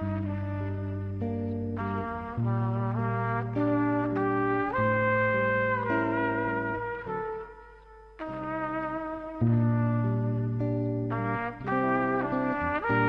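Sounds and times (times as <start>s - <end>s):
instrumental jazz with trumpet: 0.0s - 13.0s.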